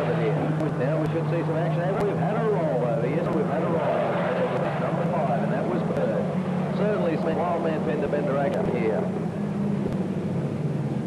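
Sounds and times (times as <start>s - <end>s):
spectators chattering: 0.0s - 9.8s
steady low drone: 0.0s - 11.0s.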